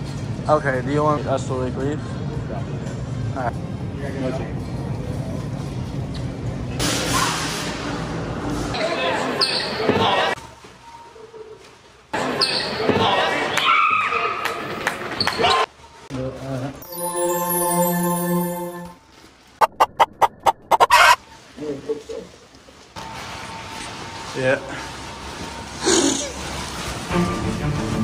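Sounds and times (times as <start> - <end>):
chicken clucking: 19.6 - 21.2
chicken squawk: 19.6 - 21.2.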